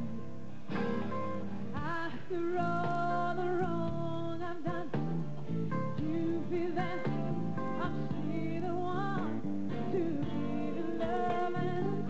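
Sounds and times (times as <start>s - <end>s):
woman singing soul ballad: 1.7s - 12.0s.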